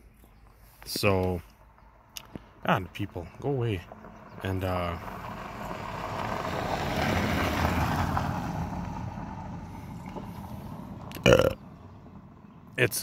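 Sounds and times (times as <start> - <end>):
vehicle passing on gravel: 0.4 - 12.7.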